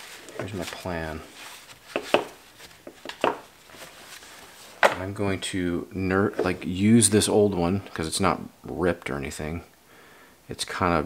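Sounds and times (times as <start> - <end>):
man talking: 0.3 - 1.4, 4.8 - 9.8, 10.5 - 11.0
tool parts knocking on workbench: 3.0 - 3.5.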